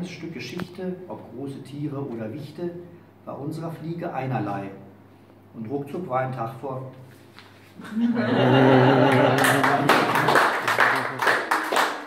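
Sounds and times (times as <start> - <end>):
audience applauding: 8.6 - 12.0.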